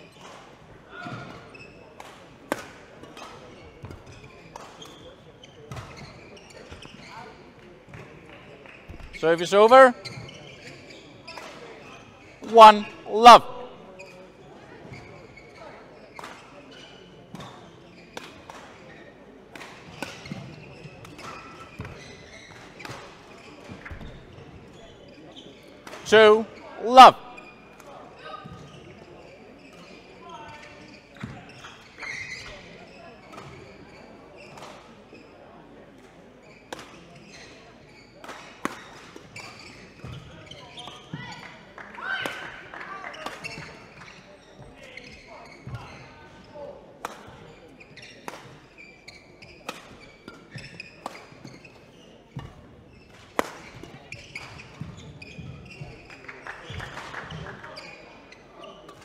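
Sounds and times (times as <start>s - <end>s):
rackets hitting shuttlecock: 52.4s - 55.0s.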